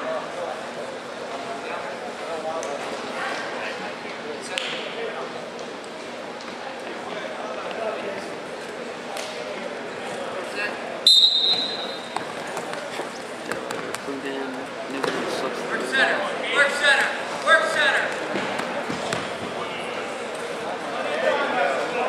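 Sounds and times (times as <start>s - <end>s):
indistinct crowd chatter: 0.0s - 22.0s
referee's whistle blast: 11.0s - 12.1s.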